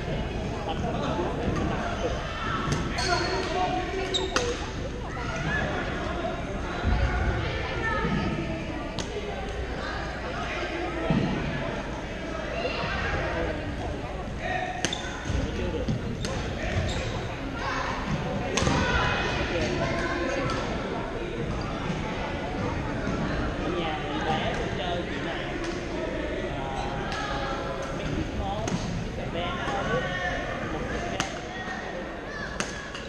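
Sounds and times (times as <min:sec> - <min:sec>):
murmur of voices in a hall: 0:00.0 - 0:33.0.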